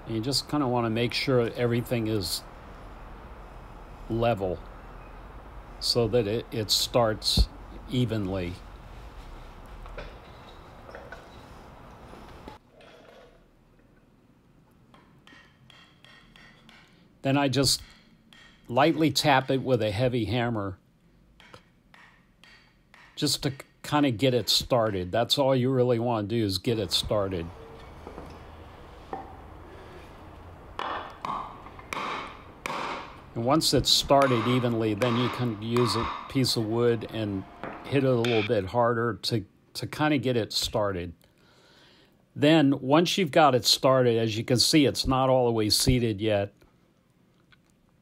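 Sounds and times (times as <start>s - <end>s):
low room noise: 0.0s - 48.0s
hammer knocking wooden block: 21.4s - 23.7s, 30.8s - 33.2s, 34.0s - 36.7s, 37.6s - 38.5s
faint metallic ringing: 34.1s - 39.1s.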